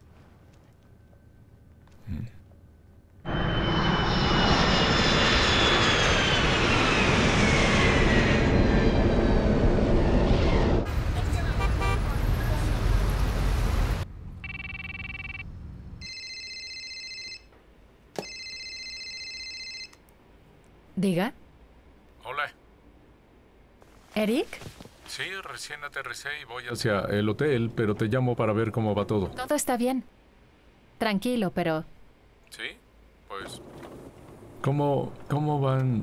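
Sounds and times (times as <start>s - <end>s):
jet airliner passing overhead: 3.2s - 14.0s
street traffic: 10.9s - 16.0s
mobile phone ringing: 14.4s - 17.5s, 18.2s - 20.0s.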